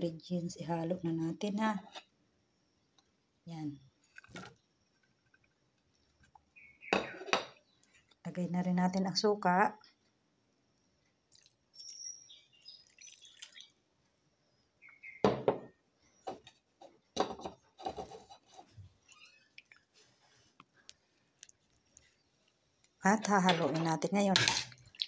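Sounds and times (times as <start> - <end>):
vinegar trickling into bowl: 11.3 - 13.8.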